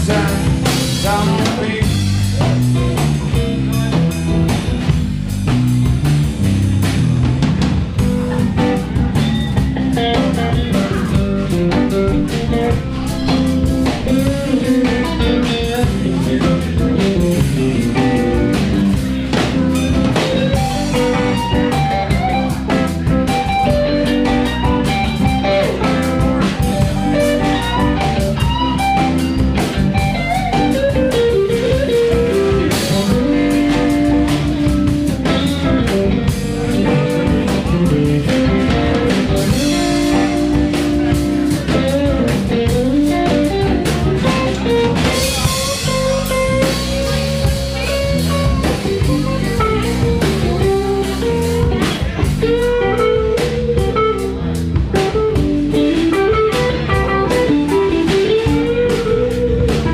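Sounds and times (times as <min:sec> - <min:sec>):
drum kit beat: 0:00.0 - 0:59.9
electric guitar: 0:00.0 - 0:59.9.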